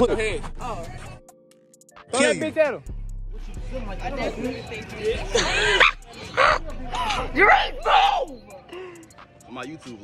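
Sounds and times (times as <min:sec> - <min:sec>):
teenager laughing and squealing: 0:05.3 - 0:06.7.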